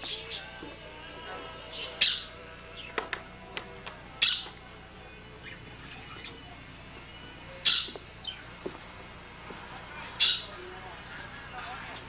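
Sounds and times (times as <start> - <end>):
faint background music: 0.0 - 12.0
pet bird squawking: 1.7 - 2.4, 4.2 - 6.6, 7.5 - 8.5, 10.0 - 12.0.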